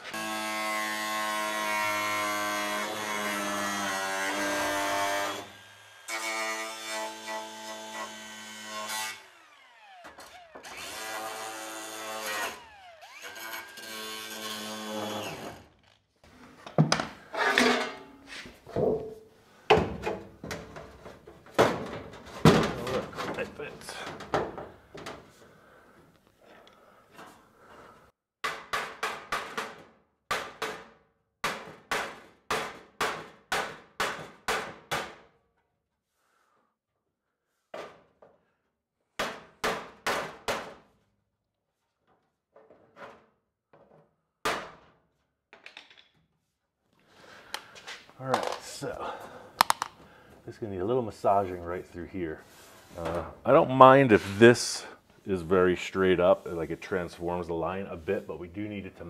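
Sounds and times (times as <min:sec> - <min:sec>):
angle grinder on sheet steel: 0:00.0 - 0:15.7.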